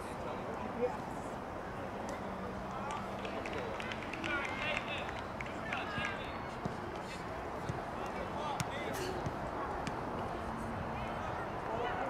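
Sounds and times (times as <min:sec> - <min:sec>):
steady outdoor hiss: 0:00.0 - 0:12.0
players and spectators calling: 0:02.7 - 0:09.8.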